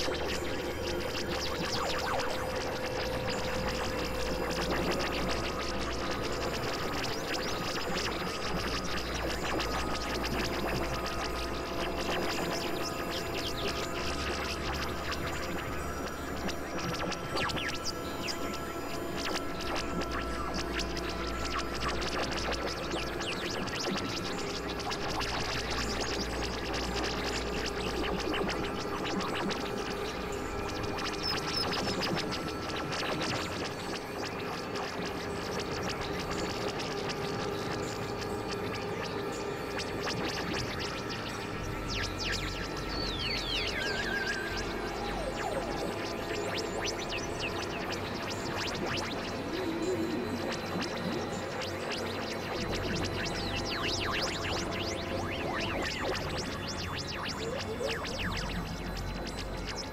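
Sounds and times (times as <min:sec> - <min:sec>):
electronic synthesizer drones: 0:00.0 - 0:59.9.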